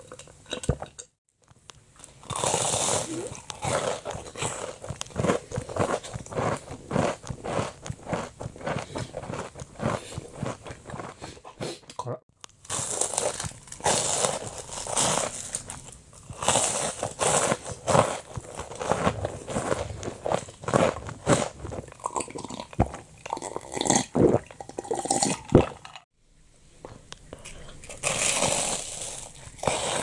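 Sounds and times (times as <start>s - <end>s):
crunchy chewing: 2.0s - 11.8s, 12.6s - 25.4s, 26.8s - 30.0s.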